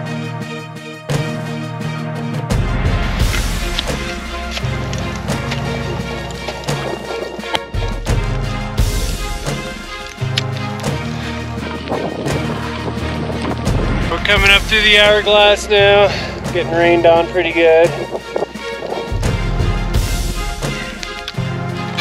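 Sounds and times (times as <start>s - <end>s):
music with drum beat and bass: 2.4s - 22.0s.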